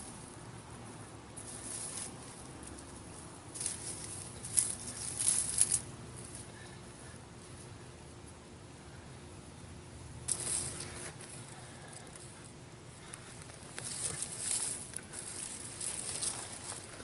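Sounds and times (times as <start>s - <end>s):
hands sifting through dry soil: 0.0s - 8.4s, 10.3s - 17.0s.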